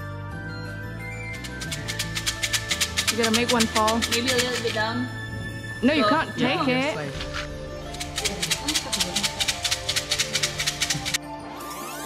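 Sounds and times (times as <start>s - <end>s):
music: 0.0s - 12.0s
wooden sticks rattling in a cup: 1.3s - 5.1s, 7.9s - 11.2s.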